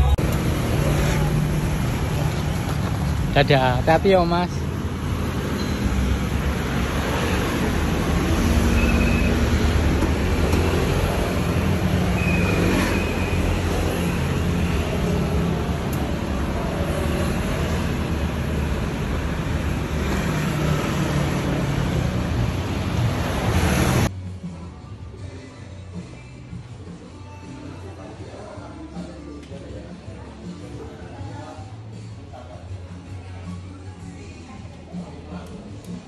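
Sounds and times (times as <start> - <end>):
road traffic rumble: 0.0 - 24.1.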